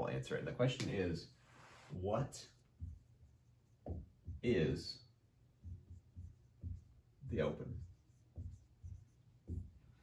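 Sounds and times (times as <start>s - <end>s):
marker writing on whiteboard: 0.8s - 10.0s.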